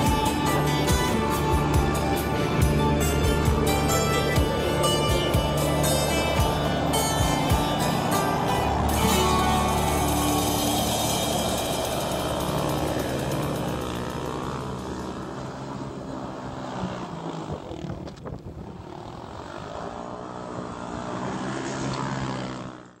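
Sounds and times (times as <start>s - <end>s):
quad bike engine revving: 0.0s - 23.0s.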